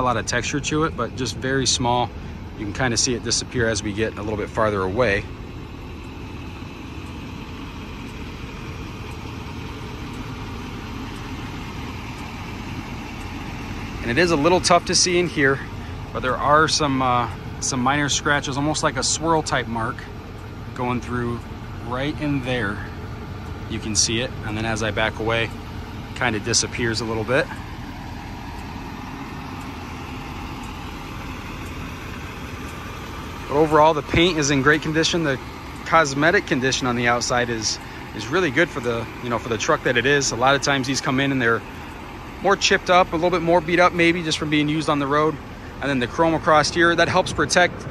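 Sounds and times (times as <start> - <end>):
outdoor background noise: 0.0 - 47.9
steady low rumble: 0.0 - 47.9.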